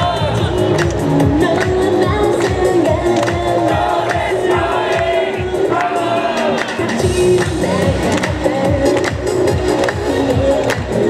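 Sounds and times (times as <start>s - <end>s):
pop music with steady beat: 0.0s - 11.0s
woman singing into microphone: 1.1s - 5.8s
crowd shouting along: 3.7s - 6.9s.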